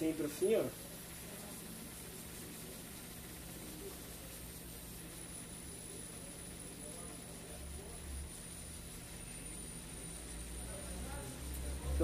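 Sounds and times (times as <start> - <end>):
hot-air station blowing hiss: 0.0 - 12.0
thin high-pitched whine: 0.0 - 12.0.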